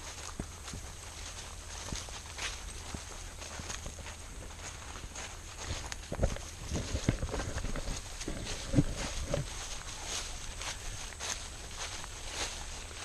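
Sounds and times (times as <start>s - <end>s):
footsteps on grass: 0.0s - 13.0s.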